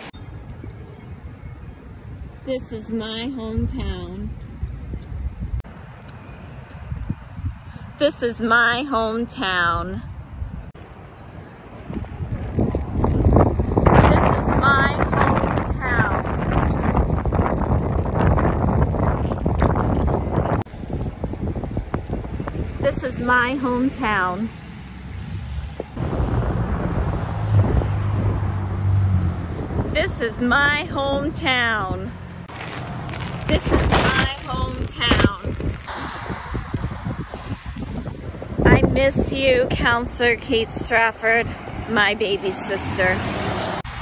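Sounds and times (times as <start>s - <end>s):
wind buffeting microphone: 0.0s - 44.0s.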